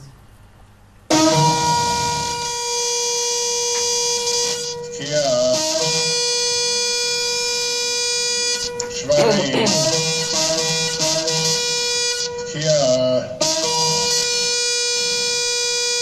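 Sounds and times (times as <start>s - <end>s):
shofar blasts: 1.1s - 12.5s.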